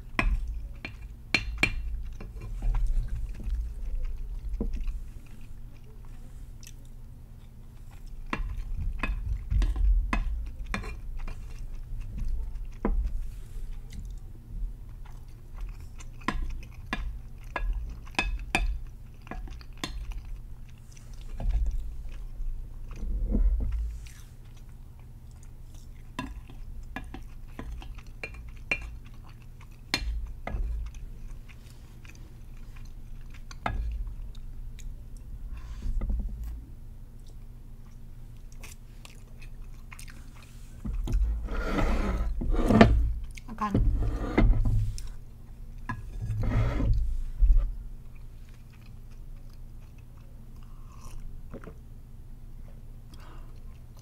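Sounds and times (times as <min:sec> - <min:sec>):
chewing and mouth sounds: 0:00.1 - 0:41.4, 0:47.6 - 0:51.8, 0:52.6 - 0:54.0
wooden spoon scraping a plate: 0:40.8 - 0:45.2, 0:45.9 - 0:47.7.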